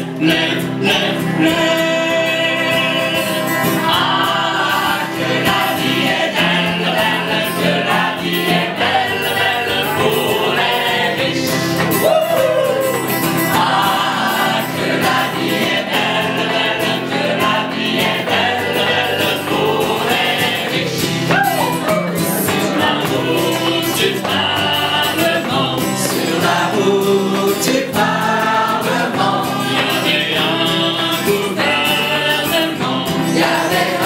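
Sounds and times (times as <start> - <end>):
mixed choir singing: 0.0 - 34.0.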